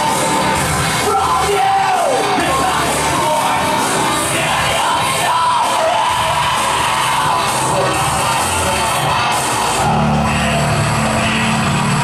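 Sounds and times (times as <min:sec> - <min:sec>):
rock band playing loud: 0:00.0 - 0:12.0
deep sustained bass line: 0:07.2 - 0:12.0.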